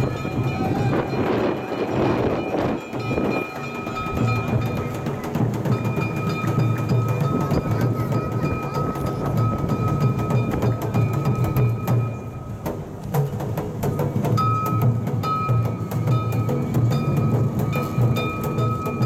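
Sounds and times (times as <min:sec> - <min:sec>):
long held high note: 0:00.0 - 0:04.7
clicking percussion: 0:00.0 - 0:19.0
drumming: 0:00.0 - 0:19.0.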